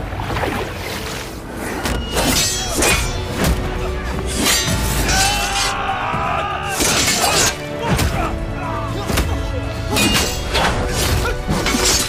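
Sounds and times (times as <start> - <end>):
dramatic background music: 0.0 - 12.0
swords clashing and scraping: 1.8 - 6.0, 6.6 - 8.3, 9.0 - 12.0
fighters shouting: 3.7 - 12.0.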